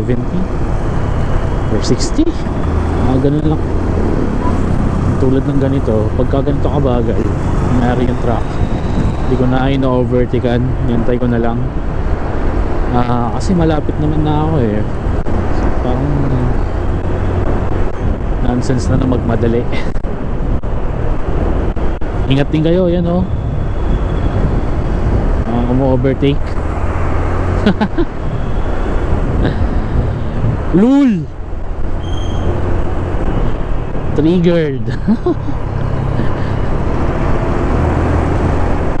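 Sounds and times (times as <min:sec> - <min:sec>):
wind rumble on microphone: 0:00.0 - 0:34.2
road noise: 0:00.0 - 0:39.0
wind on microphone: 0:07.2 - 0:09.8, 0:14.9 - 0:25.8, 0:28.2 - 0:30.8.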